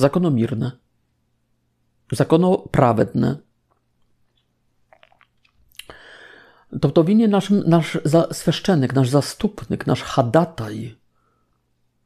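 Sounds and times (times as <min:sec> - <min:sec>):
man speaking: 0:00.0 - 0:00.8, 0:02.1 - 0:03.5, 0:06.7 - 0:11.0
mouth clicks: 0:04.3 - 0:06.0
short in-breath: 0:05.8 - 0:06.7.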